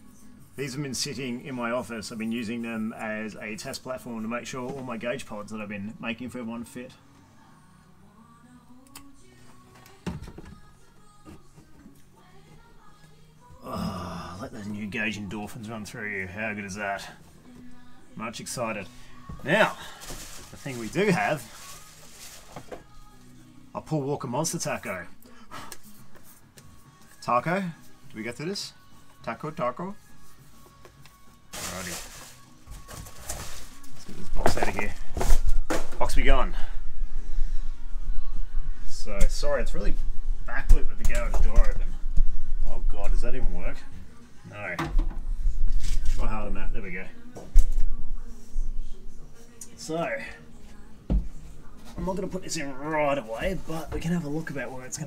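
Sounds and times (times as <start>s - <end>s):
faint radio music: 0.0s - 55.0s
rustle of handling: 19.4s - 22.9s, 30.5s - 35.4s.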